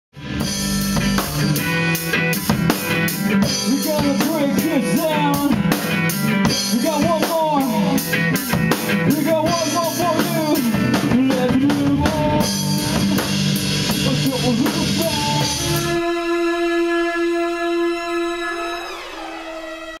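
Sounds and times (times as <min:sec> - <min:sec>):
drum kit hits: 0:00.2 - 0:16.1
electric guitar: 0:00.2 - 0:20.0.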